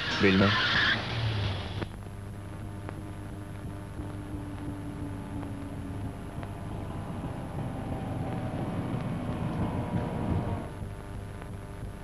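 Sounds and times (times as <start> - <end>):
van engine driving along: 2.6 - 10.8.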